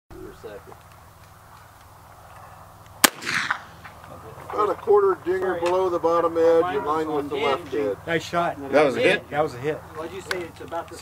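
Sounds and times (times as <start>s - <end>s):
rifle shot: 3.0s - 4.0s.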